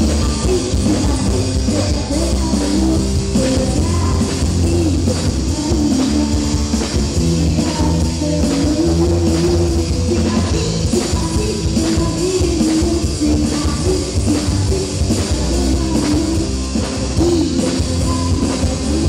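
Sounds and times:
live rock band playing: 0.0s - 19.0s
woman singing: 0.0s - 19.0s.

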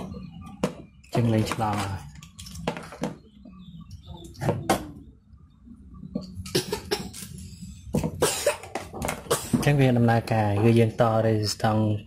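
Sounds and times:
man coughing: 8.2s - 8.7s.

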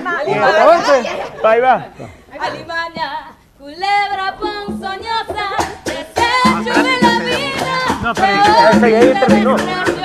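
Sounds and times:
woman singing into a microphone: 2.4s - 10.0s
sharp percussive hits: 4.4s - 10.0s.

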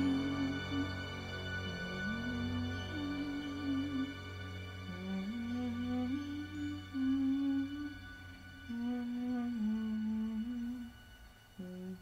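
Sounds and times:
person humming a slow melody: 0.0s - 12.0s.

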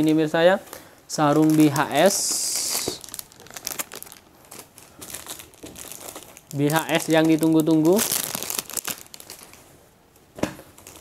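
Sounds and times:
plastic wrapping crinkling: 0.0s - 9.8s, 10.4s - 11.0s.

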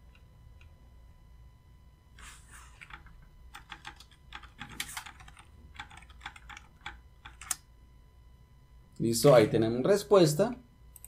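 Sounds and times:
computer keyboard typing: 2.8s - 7.6s.

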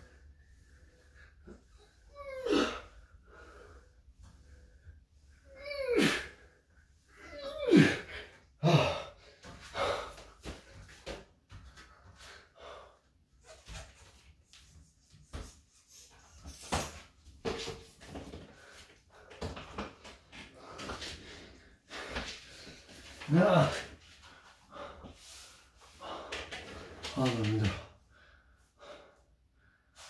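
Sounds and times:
heavy breathing: 0.0s - 11.0s, 20.3s - 30.0s
man grunting: 7.4s - 9.1s.

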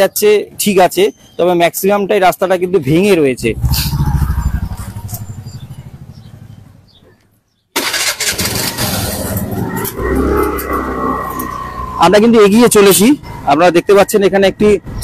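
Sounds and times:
road noise: 0.0s - 15.0s
motorcycle engine: 3.3s - 7.1s, 7.8s - 13.6s
engine whine: 3.4s - 6.9s.

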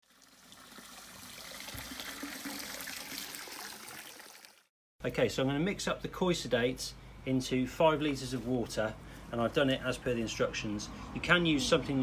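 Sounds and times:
water trickling: 0.0s - 4.7s.

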